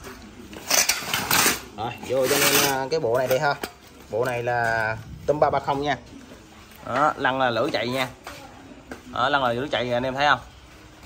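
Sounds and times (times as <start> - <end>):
parts scraping on concrete floor: 0.0 - 5.8.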